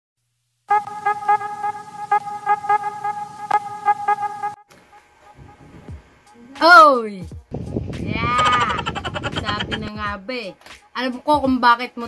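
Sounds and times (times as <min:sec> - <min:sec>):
pulsing buzzing horn-like tone: 0:00.7 - 0:06.0.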